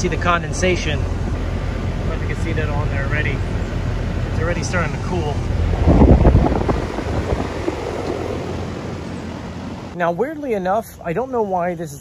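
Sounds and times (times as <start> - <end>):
air conditioner unit humming: 0.0 - 11.8
wind buffeting microphone: 3.4 - 10.0.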